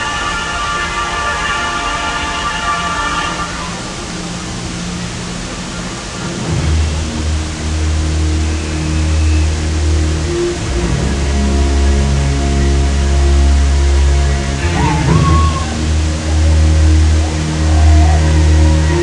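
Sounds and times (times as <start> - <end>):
fountain water jets rushing: 0.0 - 19.0
music playing: 0.0 - 19.0
deep sustained bass notes: 3.8 - 19.0.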